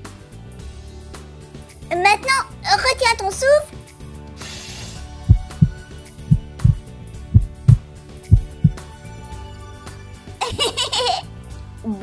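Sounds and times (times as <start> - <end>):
gentle background music: 0.0 - 12.0
short hiss: 4.4 - 5.2
heartbeat thumps: 5.3 - 8.8.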